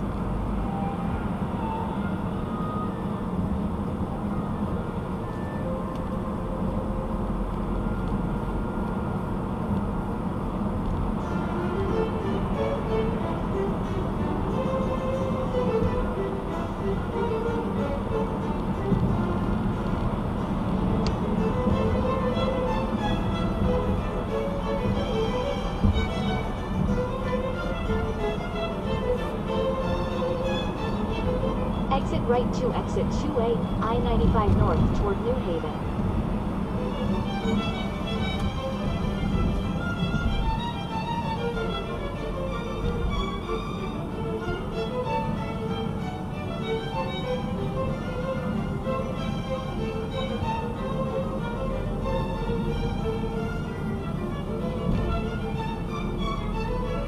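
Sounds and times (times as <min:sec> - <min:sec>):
car road and engine noise: 0:00.0 - 0:57.0
music playing: 0:11.1 - 0:57.0.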